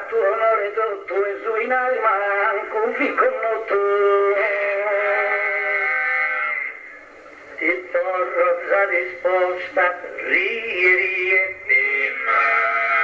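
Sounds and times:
men singing a slow chant: 3.0s - 6.6s, 8.3s - 13.0s.

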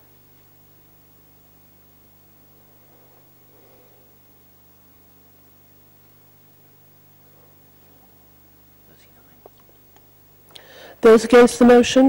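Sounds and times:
steady low hum: 0.0s - 12.0s
faint whispering: 8.8s - 9.6s.

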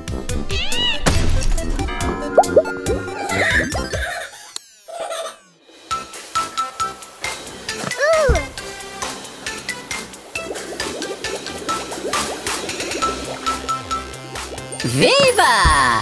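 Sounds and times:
playful cartoon music: 0.0s - 12.4s.

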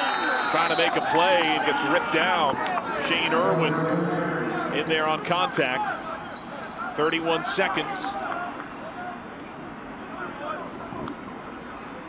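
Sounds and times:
stadium ambience: 0.0s - 12.0s.

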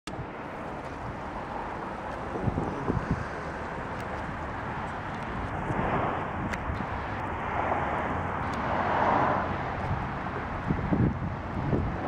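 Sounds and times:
outdoor rumble: 0.1s - 12.0s
wind noise on microphone: 0.1s - 12.0s.

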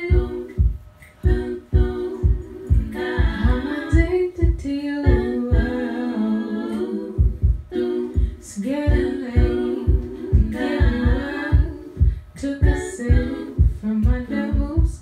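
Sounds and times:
low thumping beat: 0.0s - 15.0s
women singing a cappella: 0.0s - 15.0s.

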